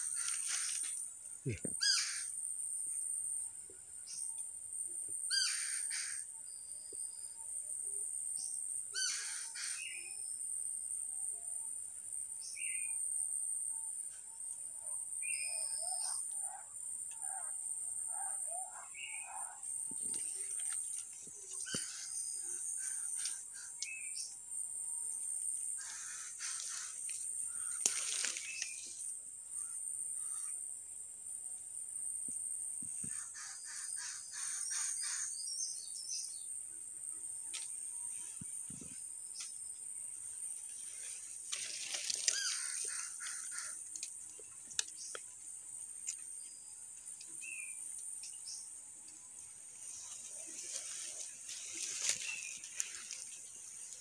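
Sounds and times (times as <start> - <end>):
birds calling: 17.1 - 24.4, 25.8 - 29.0, 33.0 - 36.4, 41.1 - 45.2.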